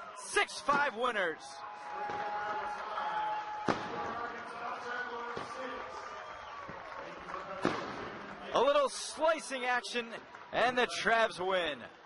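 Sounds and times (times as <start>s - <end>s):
firework bang: 3.6s - 4.2s, 7.6s - 8.2s.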